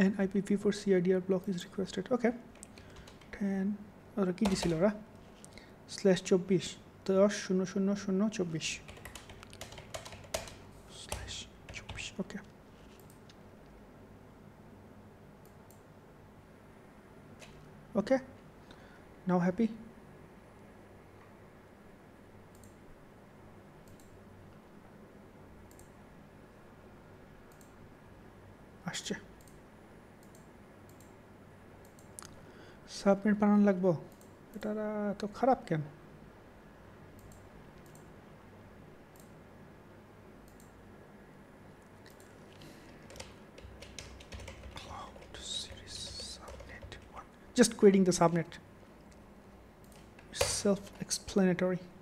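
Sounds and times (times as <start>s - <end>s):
low room hum: 0.0s - 52.0s
computer mouse clicks: 2.5s - 3.4s, 4.4s - 5.6s, 8.8s - 12.1s, 12.9s - 13.4s, 15.4s - 15.8s, 22.5s - 22.8s, 23.8s - 24.2s, 25.7s - 26.0s, 27.5s - 27.8s, 29.4s - 29.6s, 30.2s - 31.1s, 31.8s - 32.4s, 34.1s - 34.6s, 37.2s - 38.1s, 39.1s - 39.4s, 40.4s - 40.8s, 42.0s - 47.2s, 49.8s - 51.0s.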